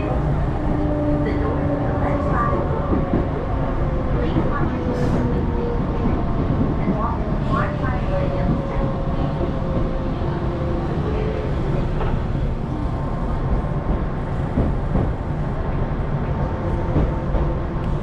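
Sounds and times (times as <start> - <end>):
train wheels rumbling on track: 0.0 - 18.0.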